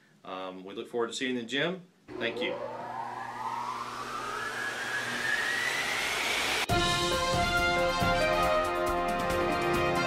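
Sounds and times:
synthesized riser whoosh: 0:02.1 - 0:06.7
music: 0:06.7 - 0:10.0.

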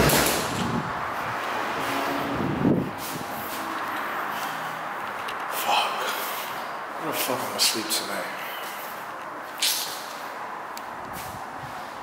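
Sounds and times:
loud bang: 0:00.0 - 0:00.8.

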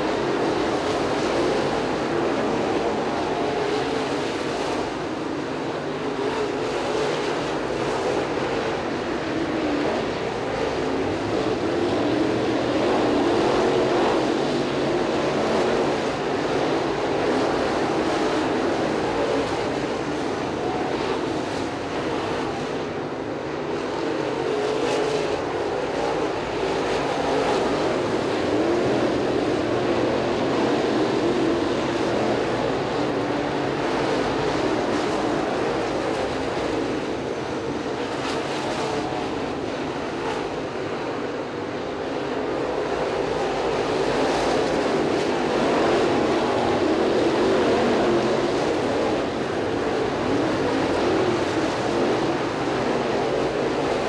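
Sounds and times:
race car engines: 0:00.0 - 0:54.0.

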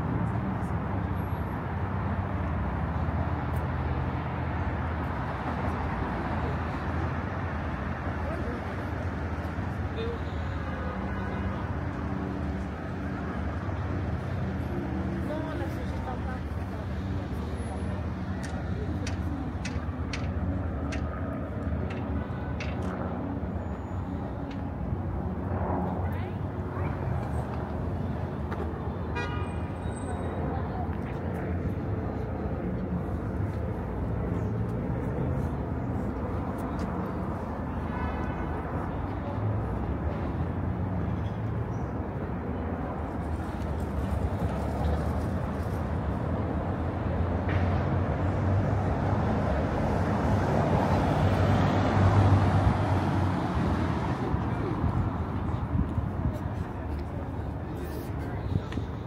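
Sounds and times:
passing cars rumbling: 0:00.0 - 0:59.0
faint voices: 0:05.4 - 0:59.0
car horn toot: 0:29.2 - 0:29.6.

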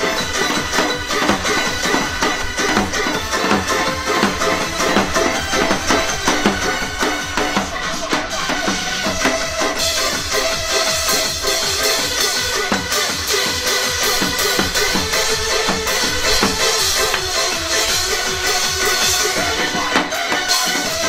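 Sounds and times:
backing music with held tones: 0:00.0 - 0:21.0
barrel drum rapid rhythm: 0:00.0 - 0:21.0
cymbals: 0:00.0 - 0:21.0.

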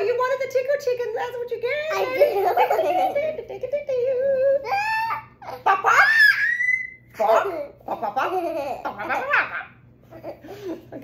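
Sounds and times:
toddler laughing and squealing: 0:04.7 - 0:07.4.

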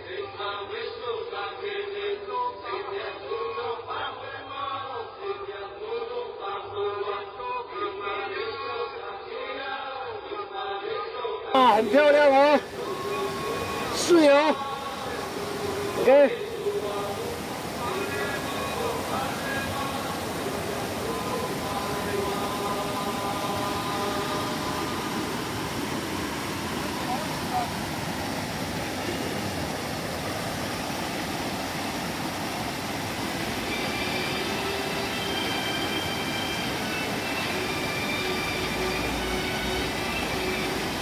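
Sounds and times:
stream rushing over boulders: 0:11.6 - 0:41.0
faint voices: 0:26.7 - 0:28.1.

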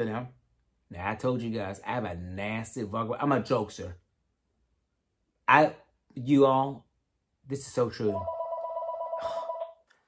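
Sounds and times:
phone ringing with warble: 0:08.1 - 0:09.7.

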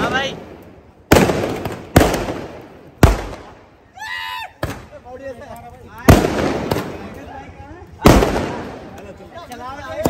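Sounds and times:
firecracker bangs: 0:00.0 - 0:03.6, 0:06.0 - 0:07.2, 0:08.0 - 0:09.0.

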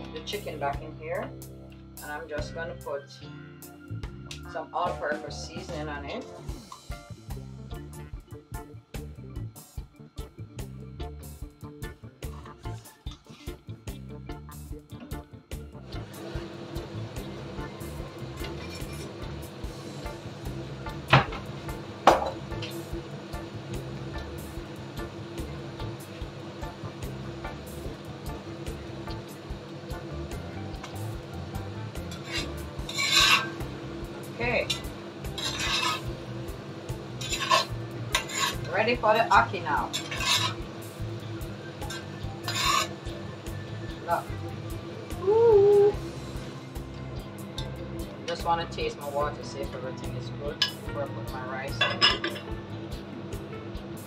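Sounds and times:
background music: 0:00.0 - 0:54.0
chicken frying in a skillet: 0:15.9 - 0:49.6
steady hum: 0:15.9 - 0:54.0
wooden spoon stirring in pan: 0:30.3 - 0:33.8, 0:34.4 - 0:36.3, 0:37.1 - 0:41.1, 0:41.8 - 0:43.1.

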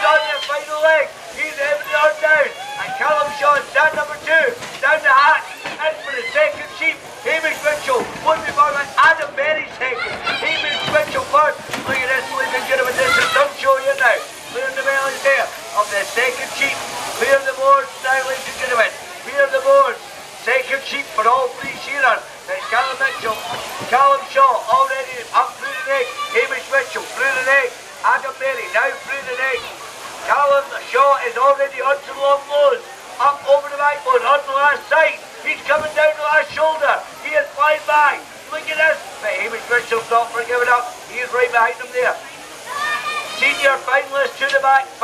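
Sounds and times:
man commentating over loudspeaker: 0:00.0 - 0:42.3, 0:43.4 - 0:45.0.

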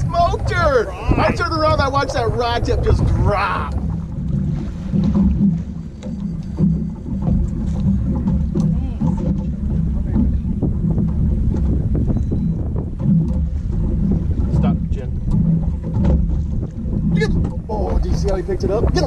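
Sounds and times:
waves against boat hull: 0:00.0 - 0:19.0
wind: 0:00.0 - 0:19.0.

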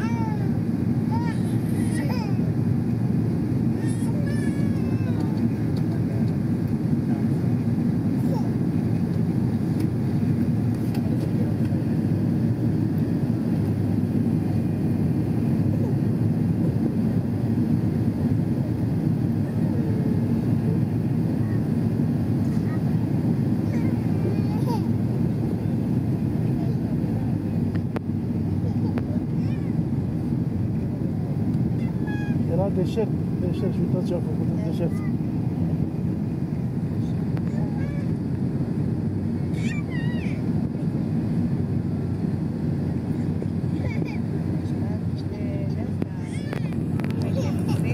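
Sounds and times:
airliner cabin engine noise: 0:00.0 - 0:47.9
faint passenger voices: 0:00.0 - 0:47.9.

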